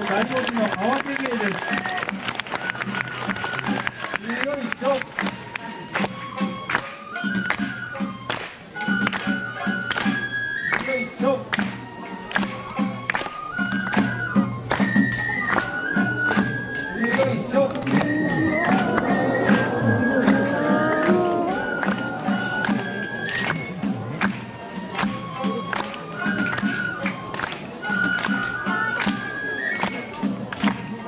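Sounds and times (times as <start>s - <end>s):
crowd voices: 0.0s - 31.0s
high flute melody: 1.2s - 31.0s
steady drumbeat: 15.8s - 28.8s.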